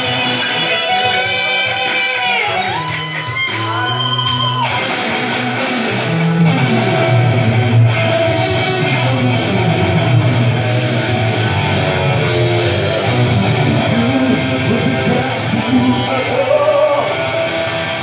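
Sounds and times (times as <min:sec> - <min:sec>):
electric guitar rock music: 0:00.0 - 0:18.0.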